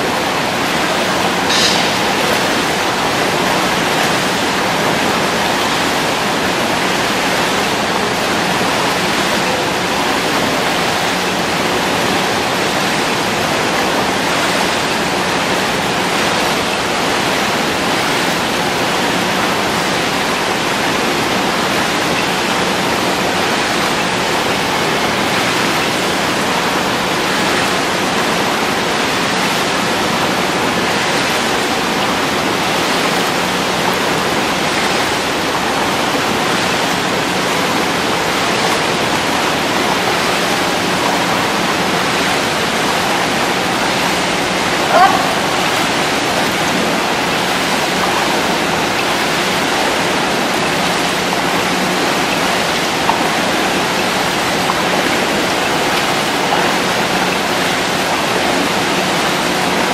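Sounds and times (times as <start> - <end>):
churning water rushing: 0.0 - 59.9.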